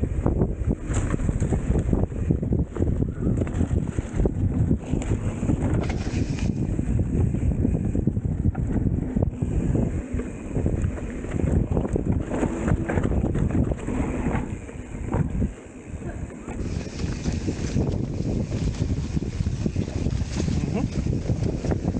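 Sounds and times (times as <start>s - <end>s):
wind buffeting microphone: 0.0s - 21.9s.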